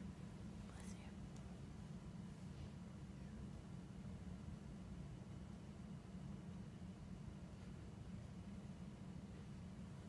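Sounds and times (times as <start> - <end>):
faint whispering: 0.6 - 1.3.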